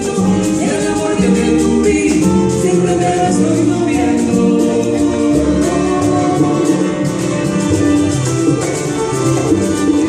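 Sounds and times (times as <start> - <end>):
voices singing together: 0.0 - 7.2
congas: 0.0 - 10.0
guitar: 0.0 - 10.0
keyboard: 0.0 - 10.0
upright bass: 0.0 - 10.0.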